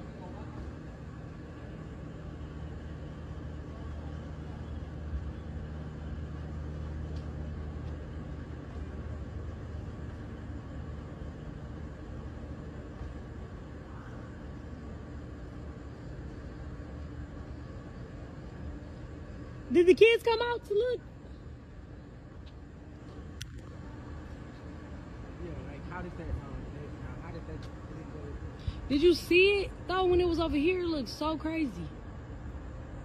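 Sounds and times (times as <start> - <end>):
distant engine hum: 0.0 - 33.0.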